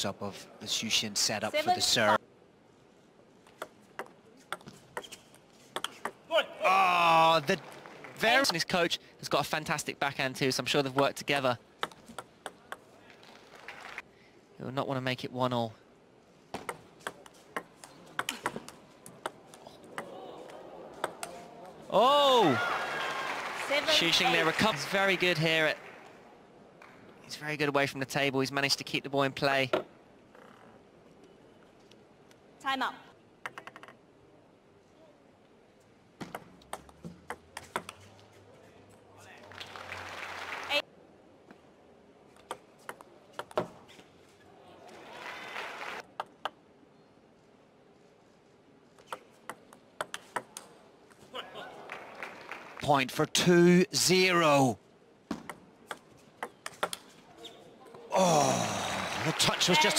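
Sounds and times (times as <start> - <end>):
applause: 7.2 - 8.3, 13.4 - 14.1, 22.4 - 26.2, 39.4 - 40.8, 45.0 - 46.1, 51.8 - 53.0, 58.6 - 59.9
table tennis ball clicks: 33.4 - 34.0, 36.2 - 38.0, 49.0 - 50.7, 55.3 - 57.1.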